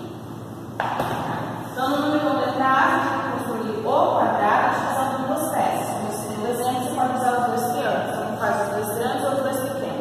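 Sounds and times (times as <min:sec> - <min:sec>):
woman speaking: 0:01.8 - 0:10.0.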